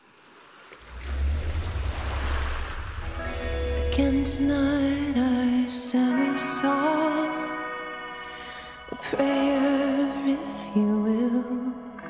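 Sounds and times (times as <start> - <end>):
deep bass drone: 0.8 - 5.9
surf-like noise rush: 0.8 - 6.0.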